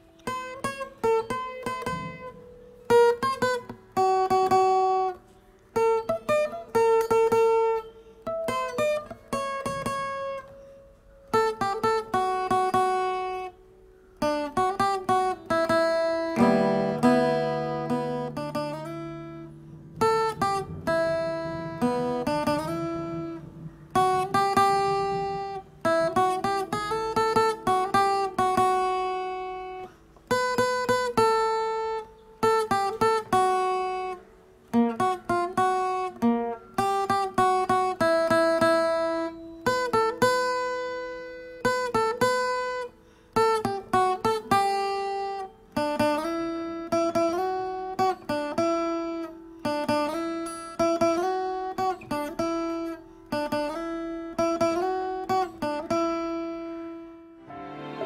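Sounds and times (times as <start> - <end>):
guitar chord ringing: 0.0 - 58.0
solo guitar melody: 0.0 - 58.0.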